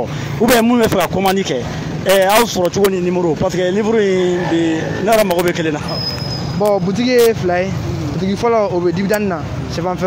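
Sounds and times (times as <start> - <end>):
man talking: 0.0 - 10.0
passing cars and motorbikes: 0.0 - 10.0
street traffic hum: 0.0 - 10.0.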